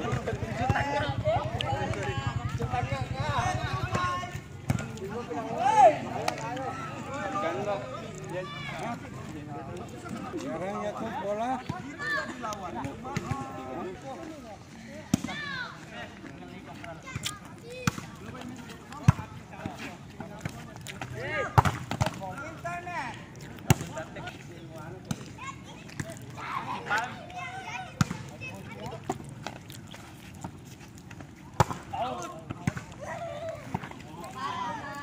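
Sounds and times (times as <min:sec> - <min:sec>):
players calling and chatting: 0:00.0 - 0:35.0.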